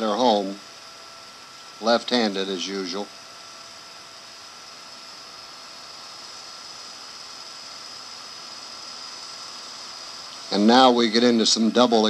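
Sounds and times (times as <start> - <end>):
tape hiss: 0.0 - 12.0.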